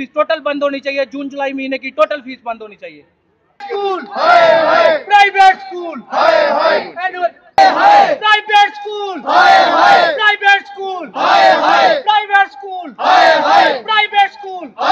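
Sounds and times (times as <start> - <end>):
crowd chanting a slogan: 3.6 - 5.2, 5.9 - 7.0, 7.6 - 8.2, 9.0 - 10.2, 10.8 - 12.1, 12.8 - 13.9, 14.6 - 14.9.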